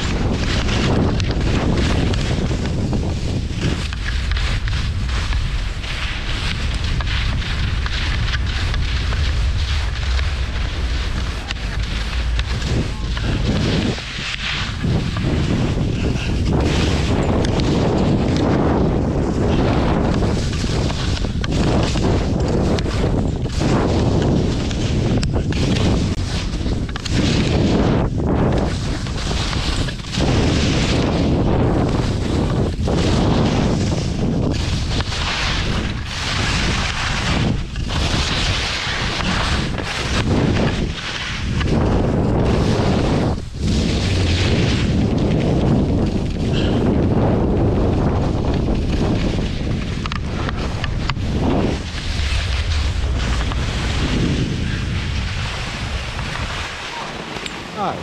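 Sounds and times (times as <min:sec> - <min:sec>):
skis sliding over snow: 0:00.0 - 0:58.0
wind buffeting microphone: 0:00.0 - 0:58.0.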